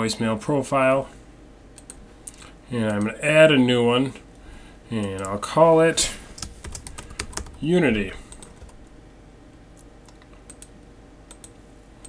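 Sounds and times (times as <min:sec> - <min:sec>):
low steady hum: 0:00.0 - 0:12.0
keyboard and mouse clicks: 0:09.8 - 0:10.7, 0:11.3 - 0:11.6.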